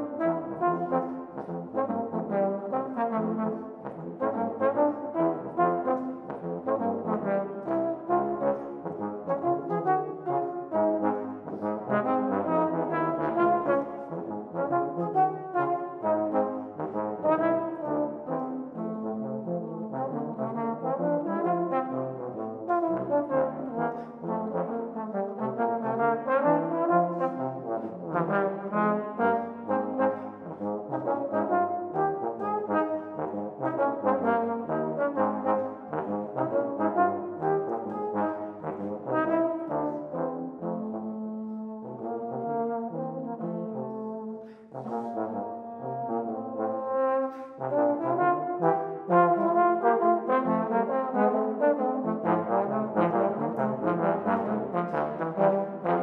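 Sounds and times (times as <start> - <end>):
trombone jazz duet: 0.0 - 56.0.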